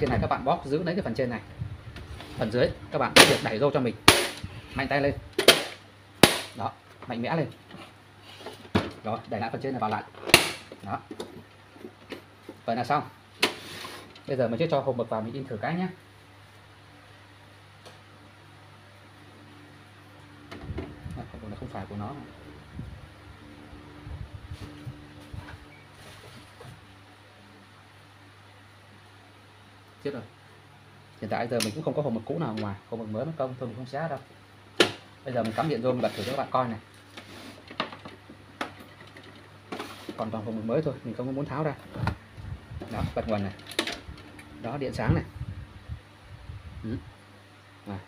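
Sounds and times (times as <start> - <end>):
knocks and rustles of handling: 6.8 - 12.7, 24.4 - 26.9, 34.8 - 40.4
low hum: 18.8 - 28.1.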